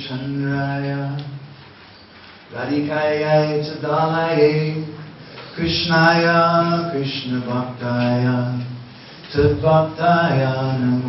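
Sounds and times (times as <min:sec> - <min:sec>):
man chanting a prayer: 0:02.5 - 0:11.0.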